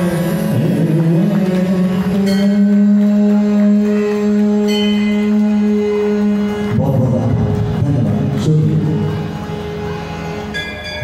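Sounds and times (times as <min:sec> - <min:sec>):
harmonium holding a note: 0:00.0 - 0:11.0.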